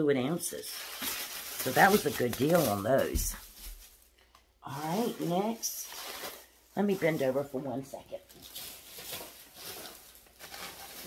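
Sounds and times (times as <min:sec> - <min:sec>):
faint rustling and handling: 0:00.6 - 0:11.0.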